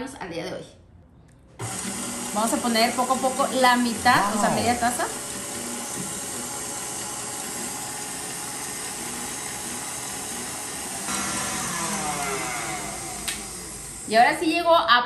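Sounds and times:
stand mixer whipping in steel bowl: 1.6s - 14.2s.

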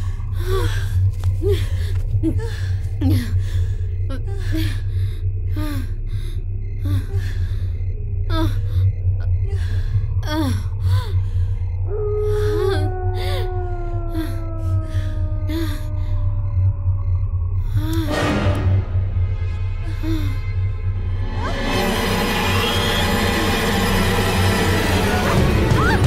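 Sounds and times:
woman gasping and moaning: 0.0s - 16.4s, 17.6s - 18.4s, 19.8s - 20.6s
low droning horror score: 0.0s - 26.0s.

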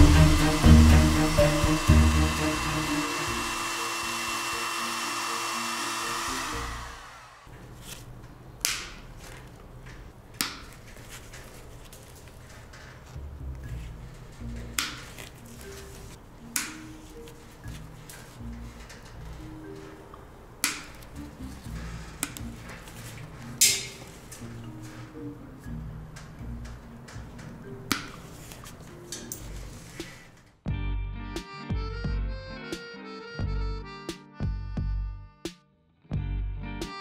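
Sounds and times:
soft background music: 0.0s - 7.0s, 7.7s - 37.0s
side cutters snipping wire: 8.6s - 9.2s, 14.4s - 15.7s, 16.5s - 16.9s, 21.8s - 22.5s, 23.5s - 24.5s.

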